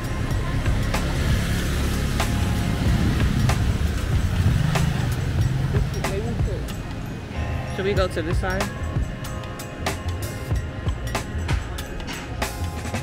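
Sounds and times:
background music: 0.0 - 13.0
small motorcycle engines rumbling: 0.0 - 13.0.

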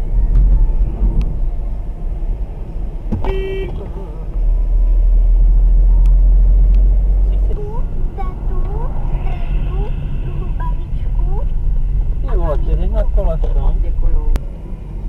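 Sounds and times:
car road and engine rumble: 0.0 - 15.0
car horn toot: 3.1 - 4.0.

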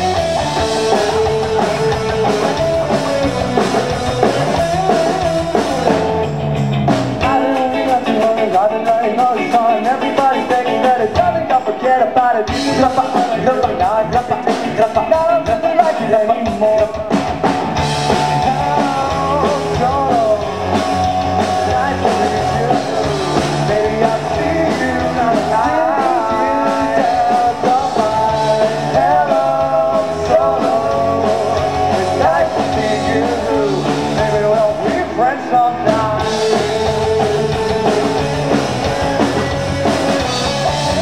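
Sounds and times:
live rock band: 0.0 - 41.0.

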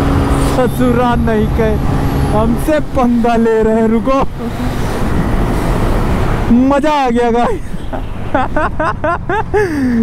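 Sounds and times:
motorcycle road noise: 0.0 - 10.0.

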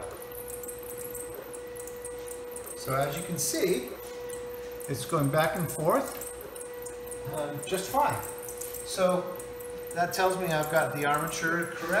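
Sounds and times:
servo motor humming: 0.0 - 12.0.

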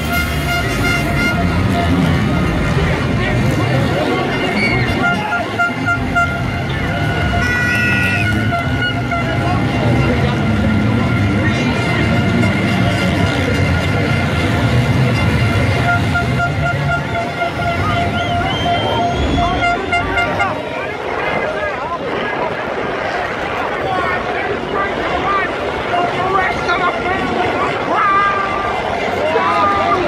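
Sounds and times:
crowd chatter: 0.0 - 30.0
motocross bike engines revving: 0.0 - 30.0.

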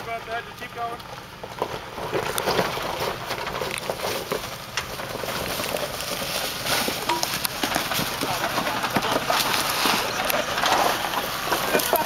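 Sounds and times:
off-road vehicle crawling: 0.0 - 12.0
stones and leaves crunching: 1.4 - 12.0
rock knocking against tyre: 6.8 - 12.0.

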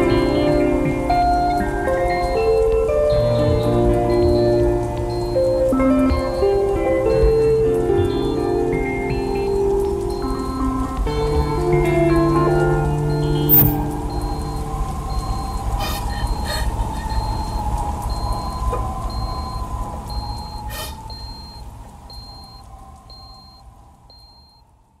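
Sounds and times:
held electronic notes: 0.0 - 22.4
crackles: 0.0 - 24.9
wavering electronic tone: 13.1 - 23.6
short high beep: 13.3 - 13.8.

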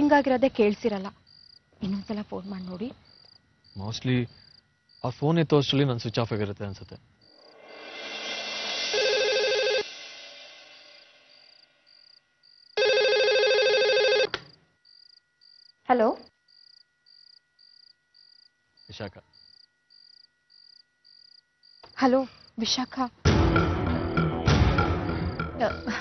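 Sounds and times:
landline telephone ringing: 8.9 - 9.9, 12.8 - 14.3.

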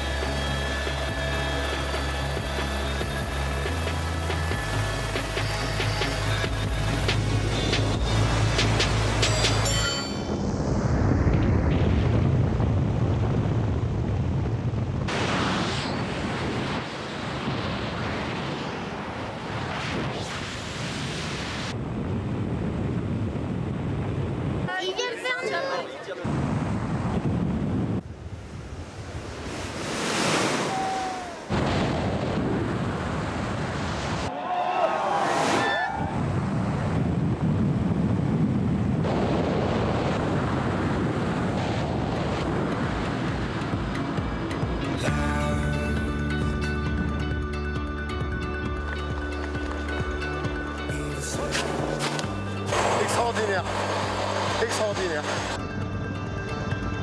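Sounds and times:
wind rushing over microphone: 6.4 - 24.7, 26.2 - 34.3, 35.0 - 45.0, 51.3 - 56.1
person shouting: 30.6 - 31.5.

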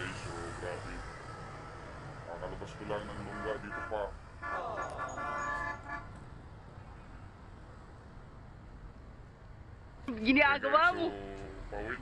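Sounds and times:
low street noise: 0.0 - 12.0
vehicle horn honk: 3.3 - 6.1.

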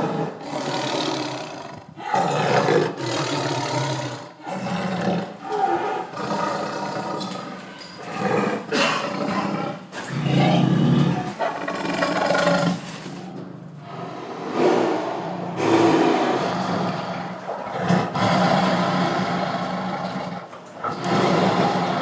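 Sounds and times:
tiger roaring and growling: 0.0 - 22.0.

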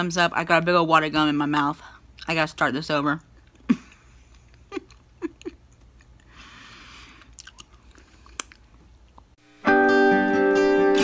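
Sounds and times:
mouth chewing gum: 7.1 - 9.3.

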